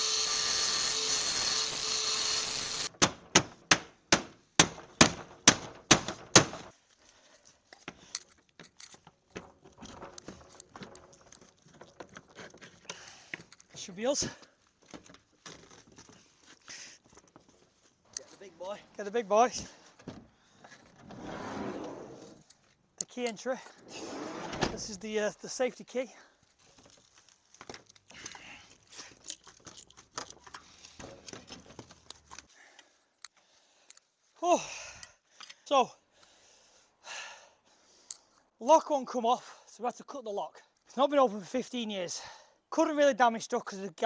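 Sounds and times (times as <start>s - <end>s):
scrapes on metal garage door: 21.0s - 22.2s, 23.8s - 25.0s.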